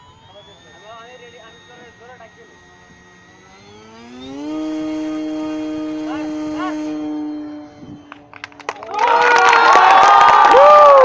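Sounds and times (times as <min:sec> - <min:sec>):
model airplane motor whine: 0:00.0 - 0:11.0.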